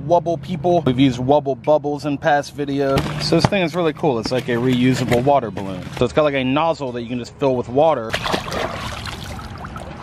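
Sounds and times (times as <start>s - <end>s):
water rushing into balloon: 8.1s - 10.0s.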